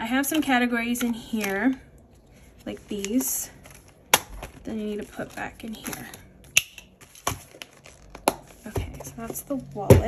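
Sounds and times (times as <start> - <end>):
plastic rustling: 0.3 - 9.4.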